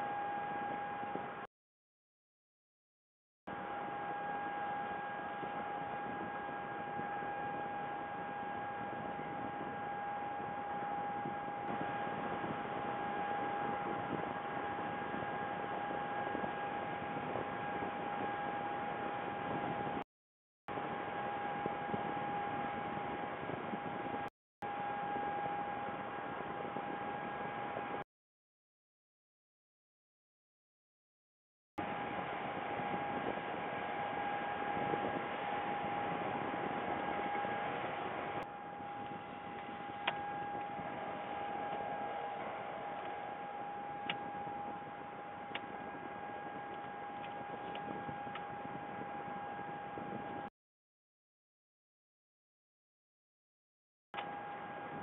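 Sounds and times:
high-pitched whining hum: 0.0 - 1.5, 3.5 - 20.0, 20.7 - 28.0, 31.8 - 50.5, 54.2 - 55.0.

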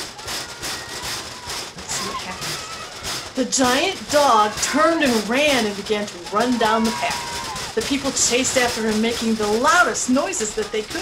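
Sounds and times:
hand-held noisemakers shaken: 0.0 - 11.0.

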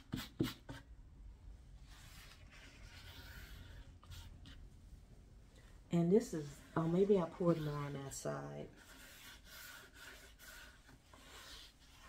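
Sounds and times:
gloved hand rubbing board: 8.8 - 12.0.

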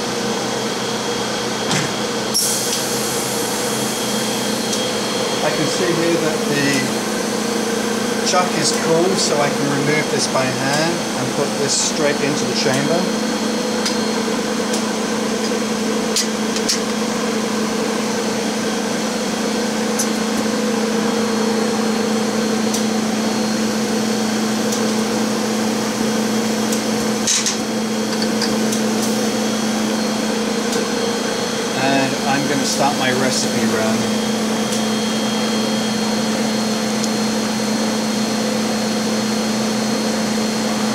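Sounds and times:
machine hum: 0.0 - 40.9.

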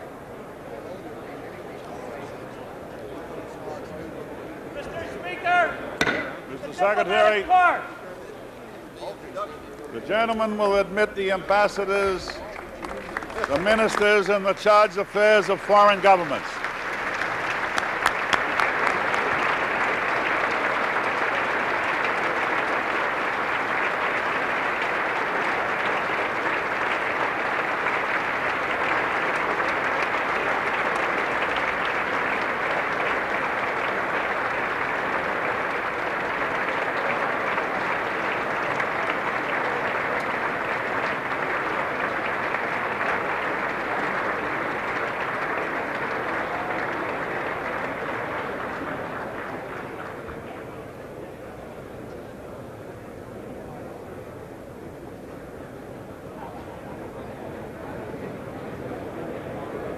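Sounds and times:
crowd applauding: 4.8 - 8.0, 10.0 - 51.9.

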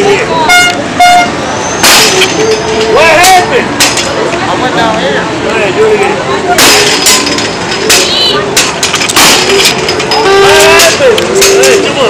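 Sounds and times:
crowd of voices: 0.0 - 12.0
held pitched tone: 7.9 - 8.5.

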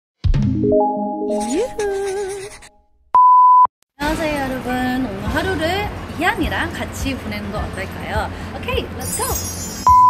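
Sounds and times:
high electronic beep: 9.4 - 10.0.

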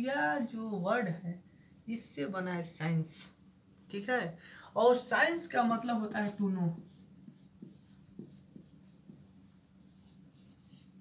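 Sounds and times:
marker squeaking on whiteboard: 6.8 - 11.0.

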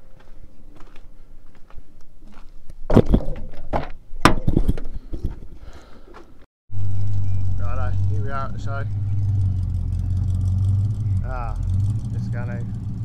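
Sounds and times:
footsteps: 0.0 - 3.9.

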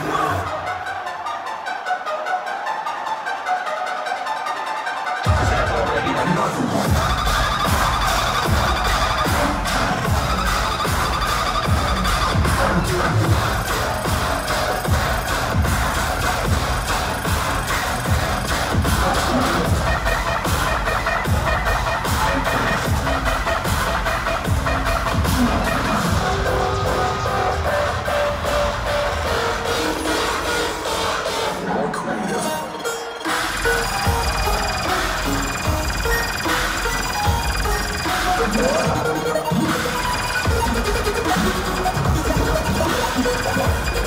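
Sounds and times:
dubstep over a loudspeaker: 5.2 - 44.0.

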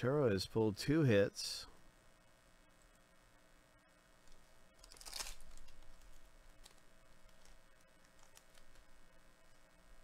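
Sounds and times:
foil wrapper tearing: 4.8 - 8.8
foil crinkling: 4.8 - 9.0.

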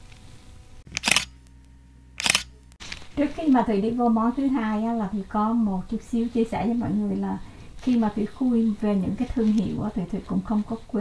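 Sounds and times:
faint steady hum: 0.0 - 11.0
camera shutter double click: 0.9 - 1.4, 2.2 - 2.6.

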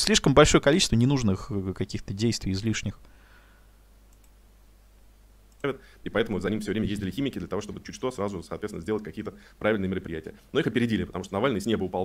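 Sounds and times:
steady low hum: 1.4 - 12.0
computer mouse clicks: 4.1 - 4.4, 5.5 - 5.8.

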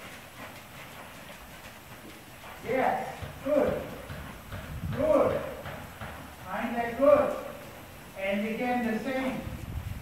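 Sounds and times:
muffled horse hoofbeats: 0.0 - 10.0.

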